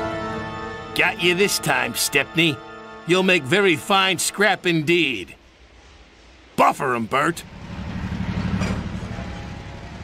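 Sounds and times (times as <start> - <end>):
diesel locomotive engine rumble: 3.6 - 10.0.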